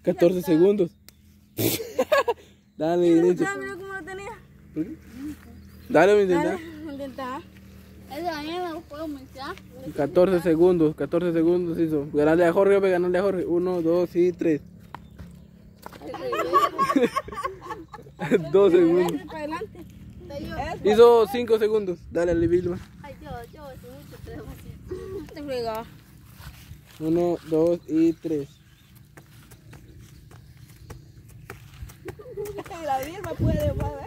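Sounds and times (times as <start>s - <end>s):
voices: 2.9s - 28.6s, 32.0s - 34.0s
people laughing: 16.0s - 19.8s.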